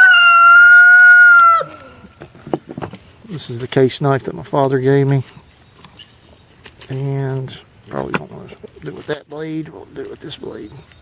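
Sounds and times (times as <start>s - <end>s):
rooster crowing: 0.0s - 2.0s.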